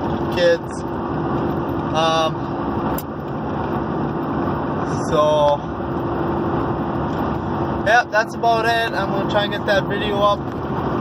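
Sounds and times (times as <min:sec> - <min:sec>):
road and engine rumble: 0:00.0 - 0:11.0.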